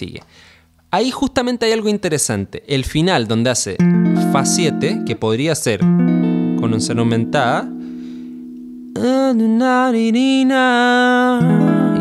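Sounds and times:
electric guitar chord: 0:03.8 - 0:09.3, 0:11.4 - 0:12.0.

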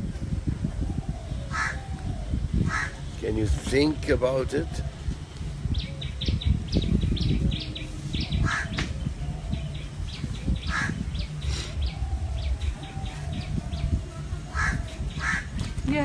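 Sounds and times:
steady low rumble: 0:00.0 - 0:16.0
small birds chirping: 0:00.6 - 0:16.0.

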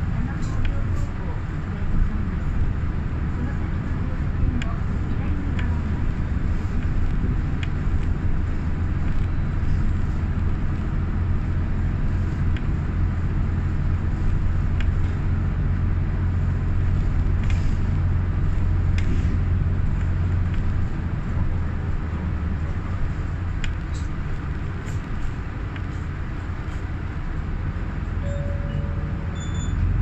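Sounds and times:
bus engine and road drone: 0:00.0 - 0:30.0.

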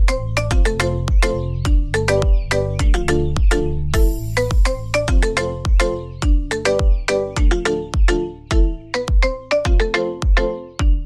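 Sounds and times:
steady bass beat: 0:00.0 - 0:11.0.

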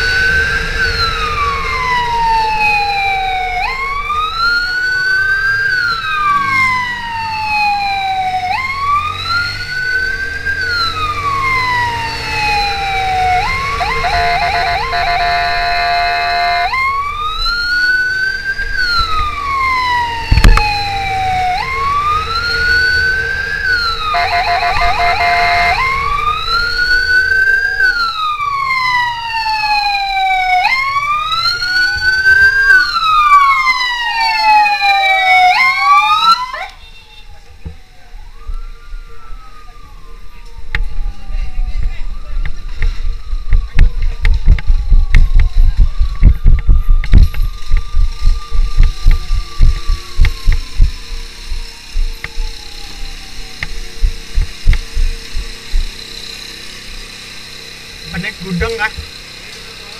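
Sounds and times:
second siren wailing: 0:00.0 - 0:59.4
electronic siren wailing: 0:00.0 - 0:59.9
vehicle horn blast: 0:13.7 - 0:16.8, 0:24.1 - 0:26.0.

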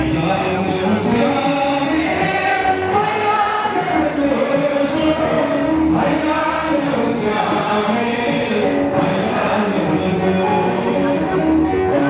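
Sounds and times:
man singing a slow hymn: 0:00.0 - 0:12.0.

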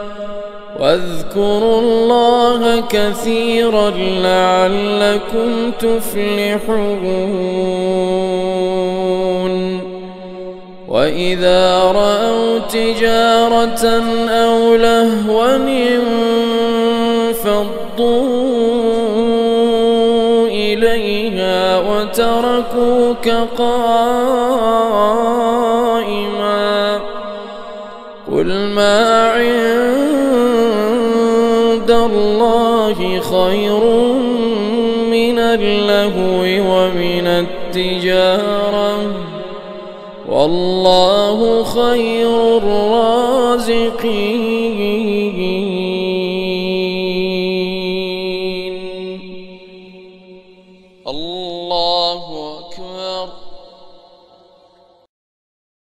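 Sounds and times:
man breathing: 0:00.0 - 0:00.8, 0:27.2 - 0:28.2, 0:39.6 - 0:40.2
man chanting recitation: 0:00.0 - 0:53.9.

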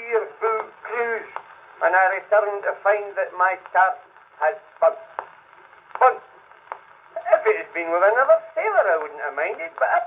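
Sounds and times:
record surface noise: 0:00.0 - 0:10.0
man's spoken comic monologue: 0:07.2 - 0:10.0.

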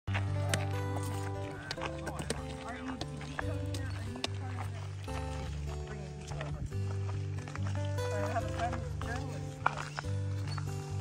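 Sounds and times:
bass notes and chords: 0:00.1 - 0:11.0.

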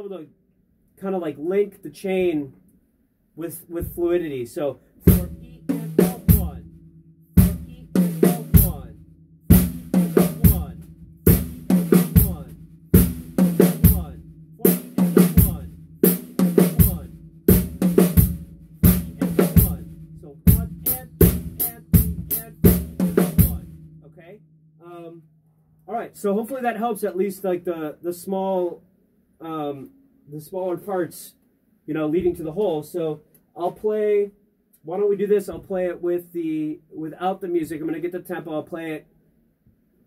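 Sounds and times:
drum kit with snare: 0:03.8 - 0:04.3, 0:05.0 - 0:23.9.

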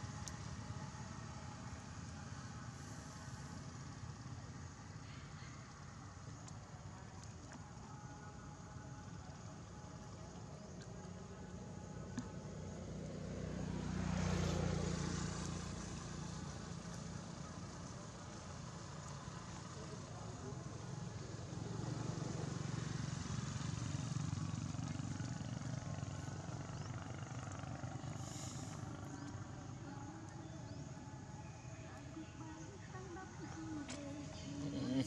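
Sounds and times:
passing vehicle engines hum: 0:00.0 - 0:35.0.

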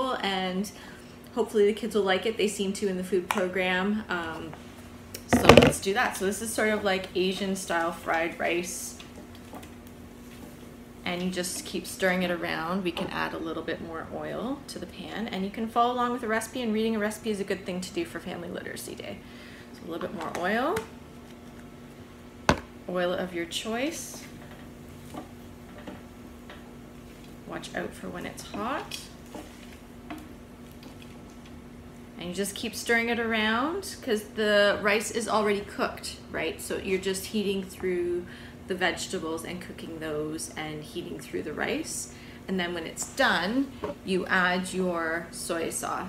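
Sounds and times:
low steady hum: 0:00.0 - 0:46.0.

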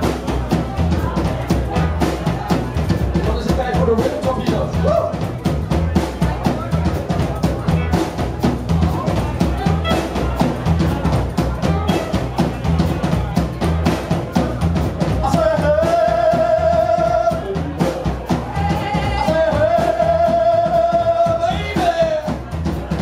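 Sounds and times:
rockabilly band playing: 0:00.0 - 0:23.0.

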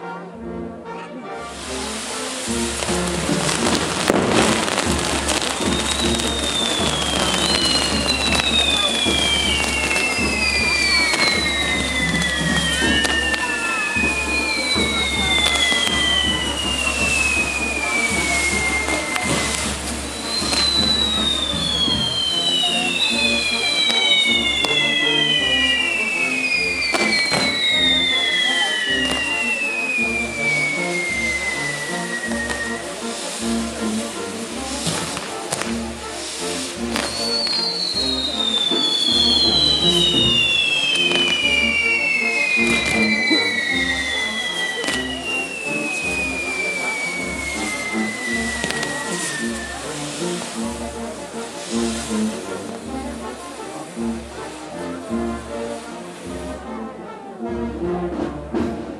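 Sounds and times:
firework wheels crackling and fizzing: 0:01.4 - 0:57.0
firework bangs: 0:01.5 - 0:55.1
falling pyrotechnic whistles: 0:01.5 - 0:55.9.

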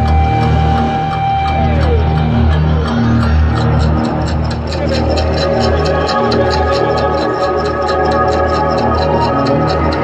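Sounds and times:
fast steady high ticking: 0:00.0 - 0:10.0.

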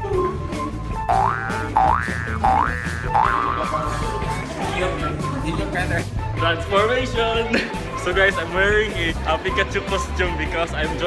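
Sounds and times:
background music with bass line: 0:00.0 - 0:11.0
cartoon boing sound effect: 0:01.1 - 0:03.9.

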